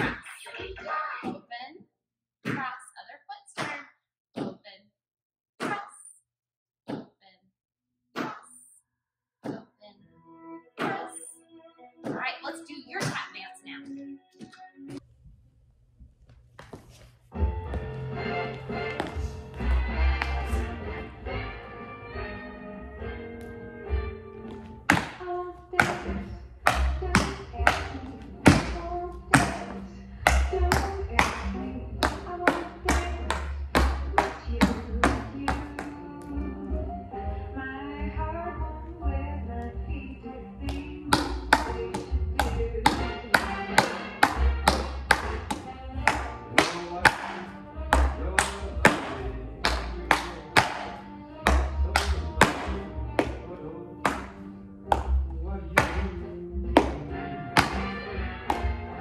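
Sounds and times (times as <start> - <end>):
recorded music with steady beat: 17.3 - 59.0
tap shoes on hard floor: 18.5 - 19.6.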